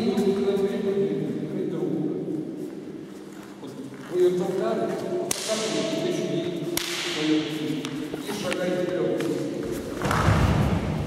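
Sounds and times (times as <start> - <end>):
sharp slap-like cracks: 5.3 - 5.8, 6.7 - 7.4, 10.0 - 11.0.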